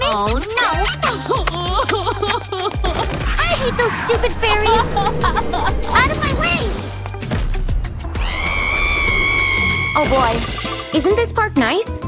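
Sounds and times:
background music: 0.0 - 12.0
high-pitched scream: 8.2 - 10.2.

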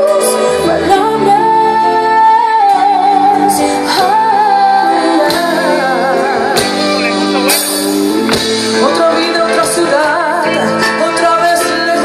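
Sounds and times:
woman singing with band: 0.0 - 7.6, 8.6 - 12.0.

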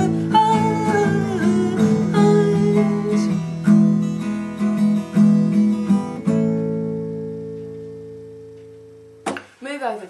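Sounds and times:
acoustic guitar strumming: 0.0 - 9.5.

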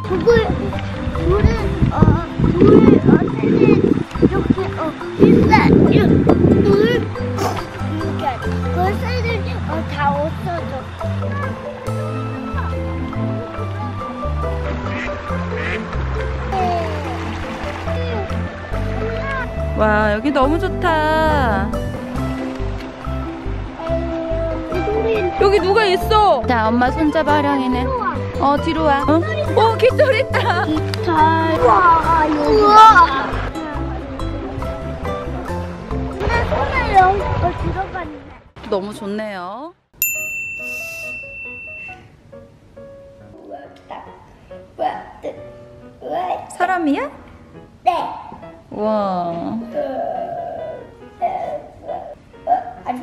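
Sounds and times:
background music with bass line: 0.0 - 38.3
duck quacking: 14.8 - 15.9
bright bell ding: 40.0 - 42.1.

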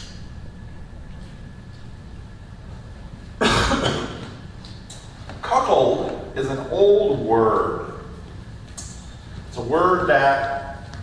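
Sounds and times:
man coughing: 3.4 - 4.4.

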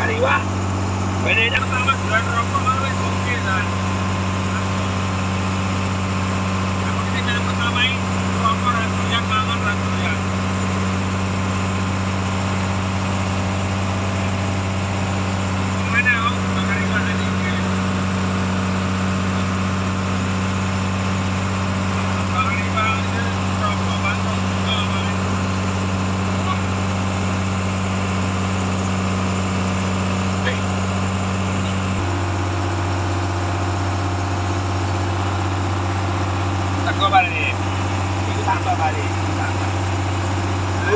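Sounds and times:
boat engine droning: 0.0 - 40.9.

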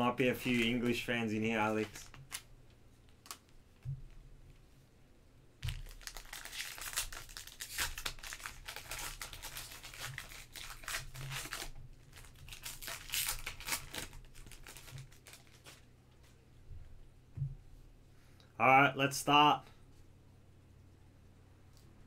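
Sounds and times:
foil wrapper crinkling and tearing: 5.6 - 15.9.

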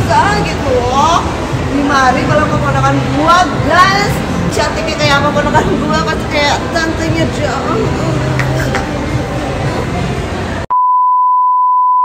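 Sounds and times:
test tone beep: 10.7 - 12.0.

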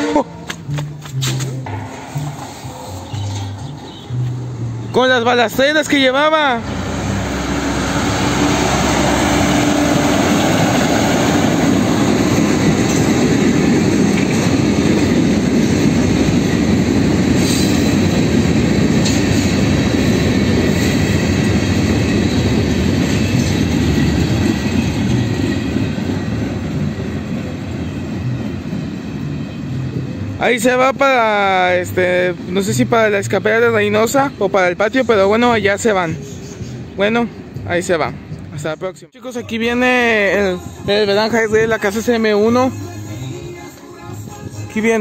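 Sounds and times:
rail cars rumbling and clattering: 0.0 - 39.0
metal clanks: 0.4 - 4.4.

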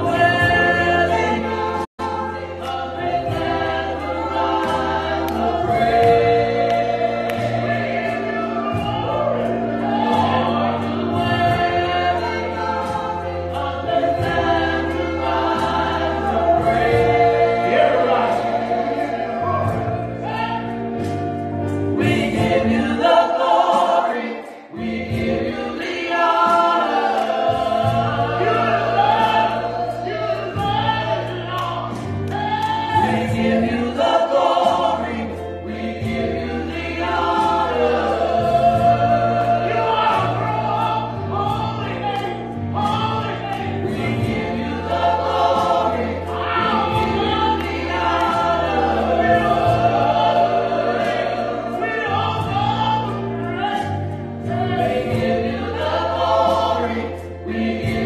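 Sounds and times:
gospel choir singing: 0.0 - 58.0
keyboard bass notes: 0.0 - 58.0.

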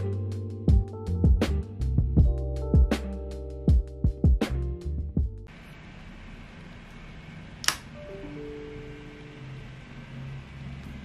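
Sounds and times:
electronic power-on chime: 8.0 - 10.4.

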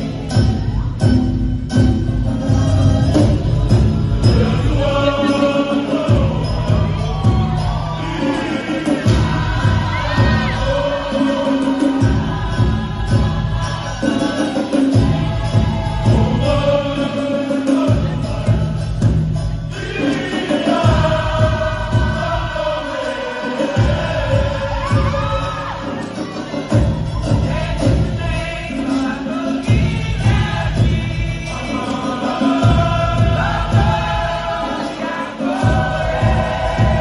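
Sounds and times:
group singing together: 0.0 - 37.0
low rhythmic beats: 0.0 - 37.0.

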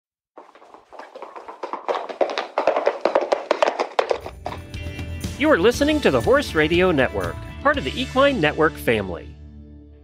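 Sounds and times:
horse hoofbeats clattering: 0.4 - 7.4.

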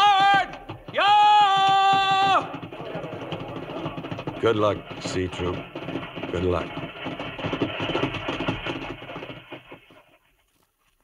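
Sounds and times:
man shouting a command: 0.0 - 2.5.

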